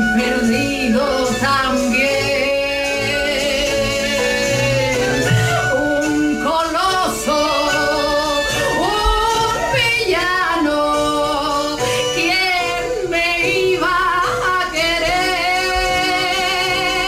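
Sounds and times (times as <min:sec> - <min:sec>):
woman singing slow song: 0:00.0 - 0:17.0.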